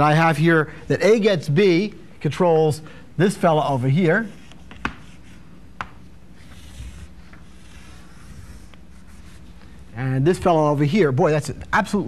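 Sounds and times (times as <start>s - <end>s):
chalk scraping on blackboard: 4.2s - 5.5s, 6.4s - 9.6s
chalk tap: 4.4s - 6.0s.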